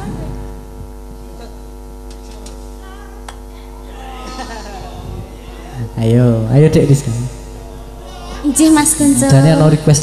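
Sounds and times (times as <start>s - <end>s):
electrical mains hum: 0.0s - 10.0s
person speaking: 8.0s - 10.0s.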